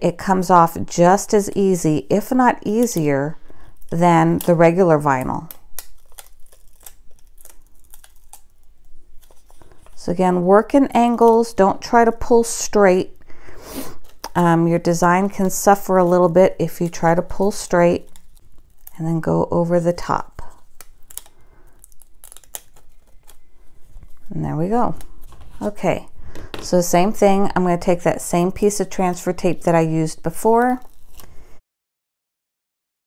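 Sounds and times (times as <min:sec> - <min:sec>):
vinyl sticker peeling crackles: 0:03.8 - 0:10.1, 0:14.0 - 0:19.0, 0:19.9 - 0:25.8, 0:30.3 - 0:31.4.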